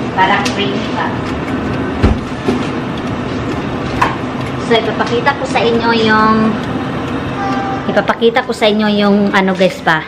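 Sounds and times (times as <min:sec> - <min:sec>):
low thump: 0:02.0 - 0:02.6.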